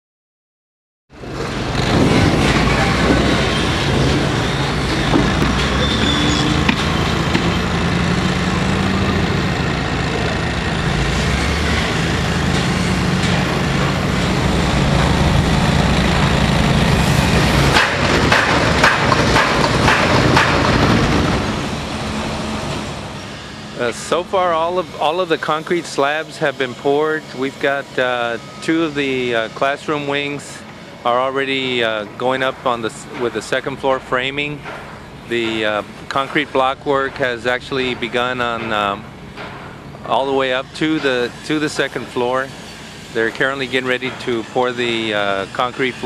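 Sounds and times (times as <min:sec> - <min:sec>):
diesel engine running: 0:01.2 - 0:46.0.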